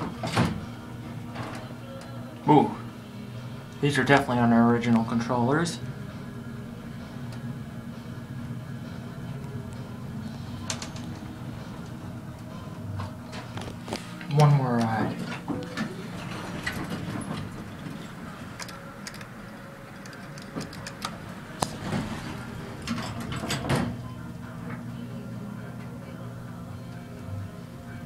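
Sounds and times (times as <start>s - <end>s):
elevator hum: 0.0s - 28.0s.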